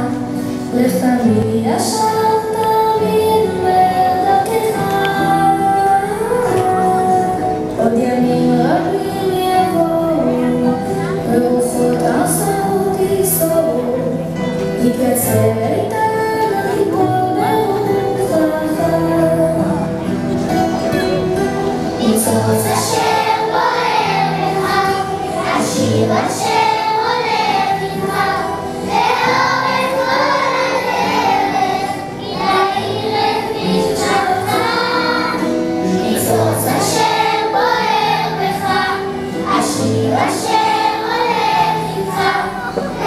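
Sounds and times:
children singing in unison: 21.4s - 43.0s.

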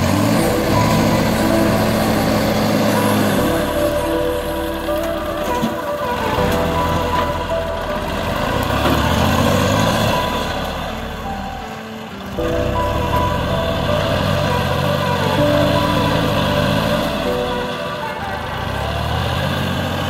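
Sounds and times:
music playing: 0.0s - 20.0s
tractor diesel engine running: 0.0s - 20.0s.

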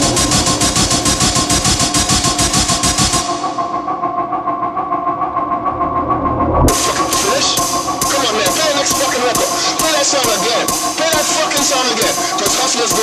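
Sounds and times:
droning tones: 0.0s - 12.0s
bass: 0.0s - 13.0s
noisy percussion hits: 0.0s - 13.0s.

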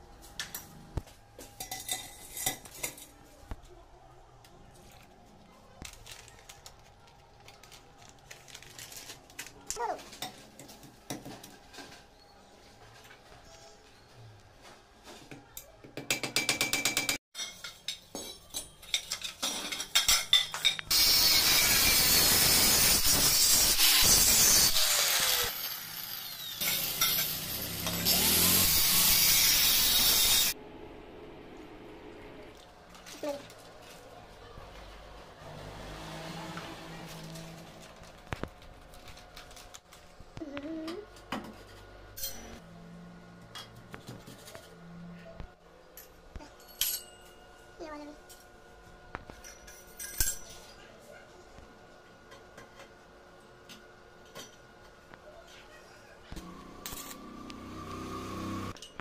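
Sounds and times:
angle grinder cutting metal tube: 20.8s - 30.6s.

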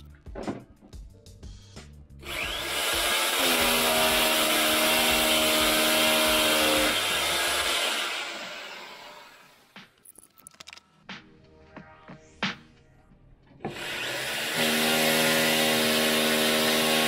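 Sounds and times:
rotary hammer drilling into wall: 2.3s - 9.1s, 13.7s - 17.0s.

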